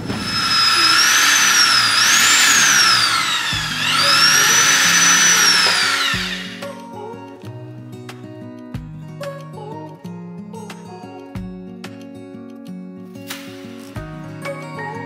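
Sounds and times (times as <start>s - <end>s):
electric drill whining: 0.0s - 6.8s
acoustic guitar music: 6.2s - 15.0s.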